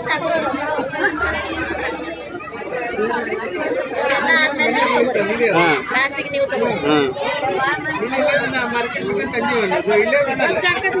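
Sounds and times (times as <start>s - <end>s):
overlapping chatter: 0.0s - 11.0s.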